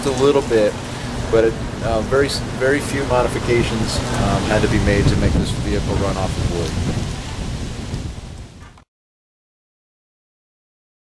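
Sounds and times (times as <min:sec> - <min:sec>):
low rumbling background noise: 0:00.0 - 0:08.7.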